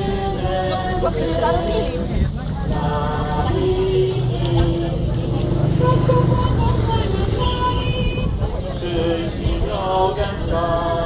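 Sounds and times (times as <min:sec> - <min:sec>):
group singing: 0:00.0 - 0:11.0
low rumble of road traffic: 0:00.0 - 0:11.0.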